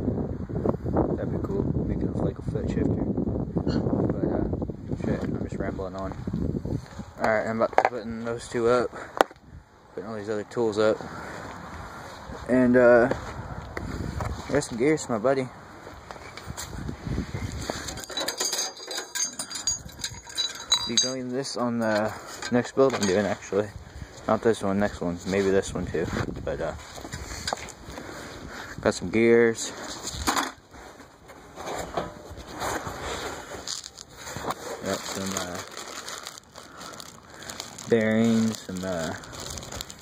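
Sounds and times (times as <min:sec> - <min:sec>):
dull handling rumble: 0:15.6 - 0:28.2
metal gears clinking: 0:17.9 - 0:21.3
plastic bags crinkling: 0:33.1 - 0:40.0.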